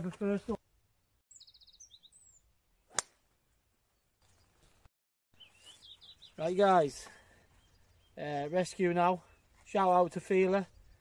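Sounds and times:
golf club striking ball: 2.9 - 3.2.

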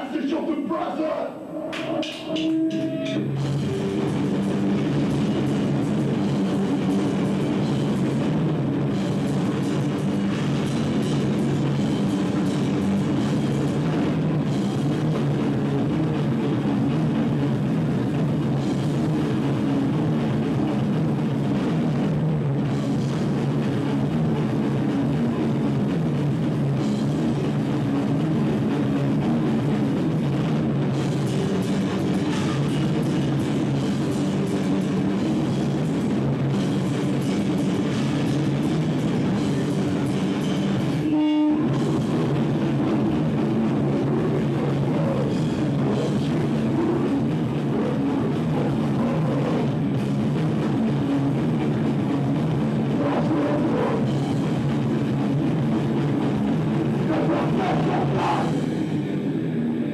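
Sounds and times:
electric guitar: 1.4 - 59.9
drum kit with cymbals: 1.8 - 59.2.

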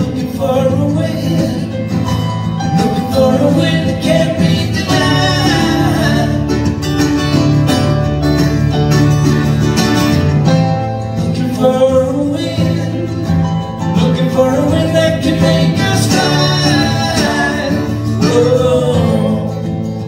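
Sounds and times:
man singing: 0.0 - 6.9, 11.1 - 20.0
acoustic guitars playing: 0.0 - 20.0.

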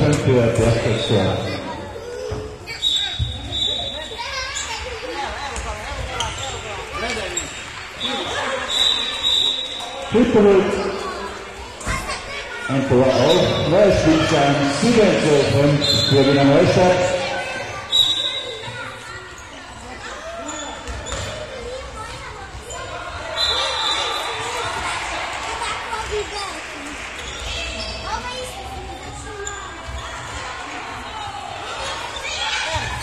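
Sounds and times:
children's voices and calls: 1.1 - 9.5, 10.4 - 15.5, 16.5 - 33.0
ball bouncing on hall floor: 20.5 - 22.8.

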